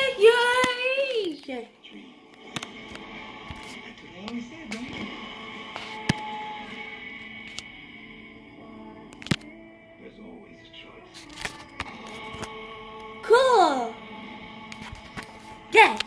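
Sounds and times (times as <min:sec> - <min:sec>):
quiet sustained music: 0:00.0 - 0:16.0.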